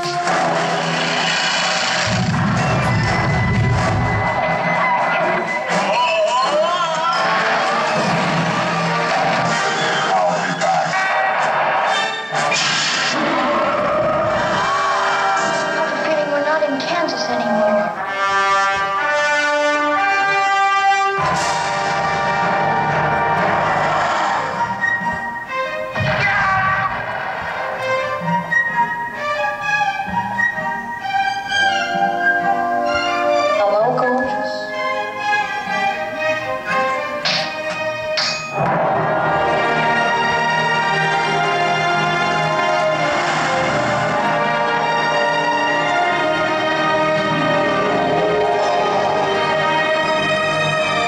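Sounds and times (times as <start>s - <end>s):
dramatic music: 0.0s - 51.0s
movie sound effects: 0.0s - 51.0s
deep rumble: 2.0s - 4.8s
orchestra hit with low drums: 25.9s - 28.4s.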